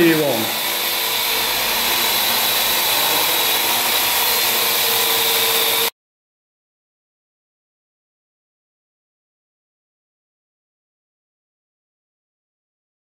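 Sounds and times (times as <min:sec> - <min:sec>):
quadcopter rotors whirring: 0:00.0 - 0:05.9.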